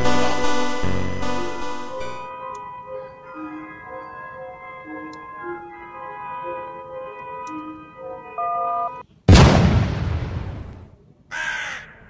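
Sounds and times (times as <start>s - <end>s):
loud boom: 9.3s - 11.0s.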